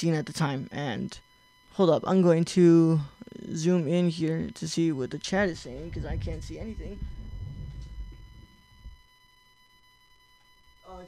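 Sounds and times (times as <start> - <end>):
high-pitched electrical buzz: 0.0 - 11.0
microphone handling rumble: 5.2 - 9.1.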